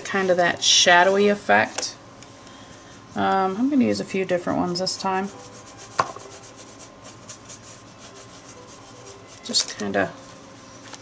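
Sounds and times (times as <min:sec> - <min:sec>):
paintbrush scratching on paper: 0:05.0 - 0:09.7.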